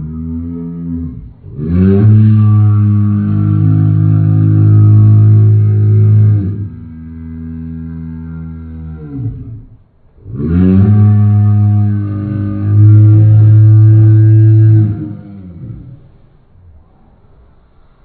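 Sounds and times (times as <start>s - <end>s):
slowed man howling: 0.0s - 9.6s.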